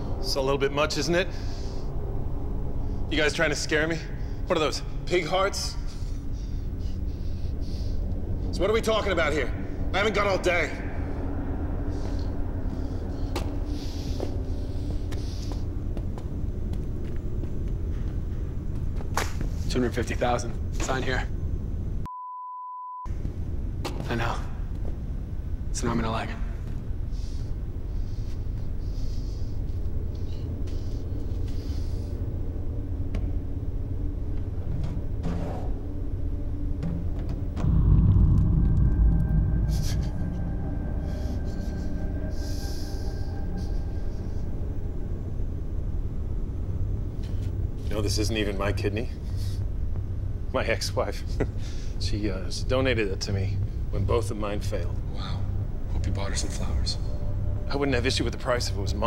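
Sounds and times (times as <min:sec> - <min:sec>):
low rumbling drone: 0:00.0 - 0:22.1, 0:23.1 - 0:59.0
faint hum: 0:00.0 - 0:59.0
thin steady high tone: 0:37.6 - 0:47.0.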